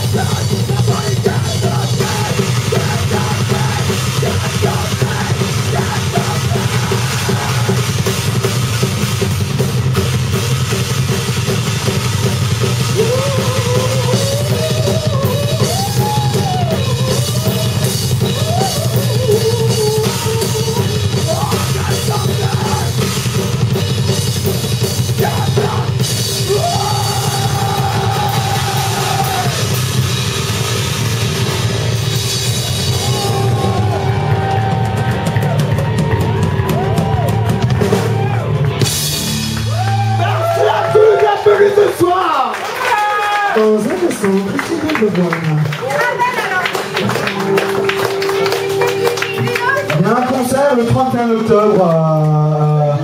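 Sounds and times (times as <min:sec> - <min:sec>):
drum kit: 0:00.0 - 0:53.0
rock band playing: 0:00.0 - 0:53.0.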